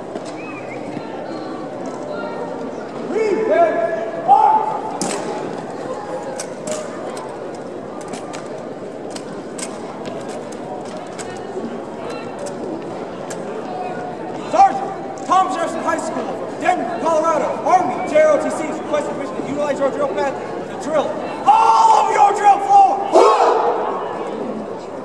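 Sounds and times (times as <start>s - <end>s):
shouted drill commands: 4.3s - 4.8s
rifles slapped and snapped: 5.0s - 5.4s, 6.3s - 7.2s, 8.0s - 11.5s.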